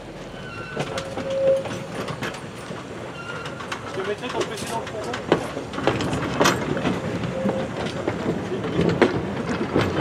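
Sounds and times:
train coaches rolling past: 0.0s - 10.0s
wheels clicking over rail joints: 0.4s - 10.0s.

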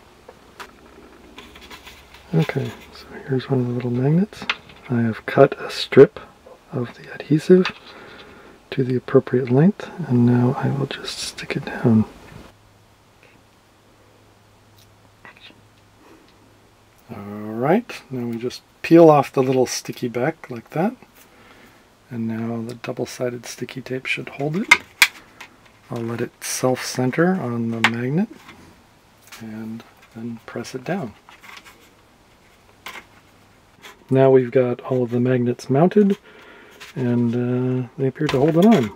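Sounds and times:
low steady hum: 0.0s - 38.9s.

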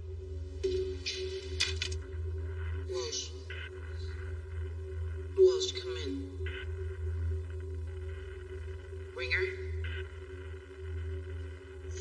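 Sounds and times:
low steady drone: 0.0s - 12.0s.

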